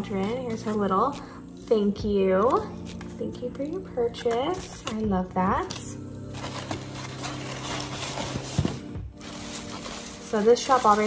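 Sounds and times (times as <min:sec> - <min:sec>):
paper filler rustling and crackling: 0:05.7 - 0:11.0.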